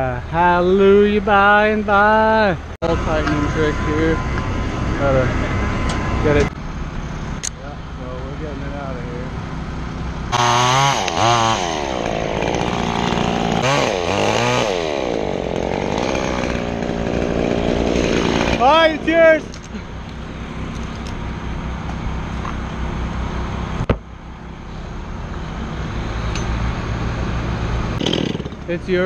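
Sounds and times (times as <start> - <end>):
chainsaw revving: 10.3 - 21.1, 27.9 - 29.0
person shouting: 18.5 - 19.5.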